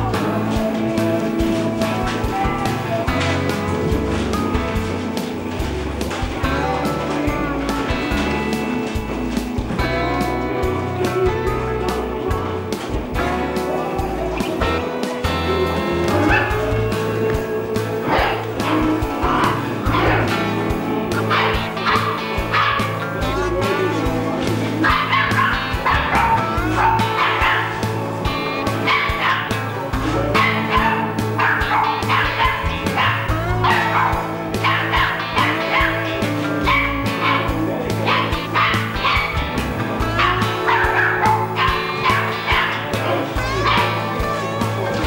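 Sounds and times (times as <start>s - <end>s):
background music: 0.0s - 45.0s
puppies yipping and whimpering: 12.2s - 45.0s.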